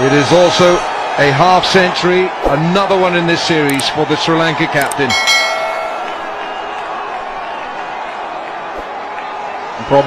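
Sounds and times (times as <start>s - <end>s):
stadium crowd noise: 0.0s - 10.0s
bell-like notification chime: 5.1s - 6.3s.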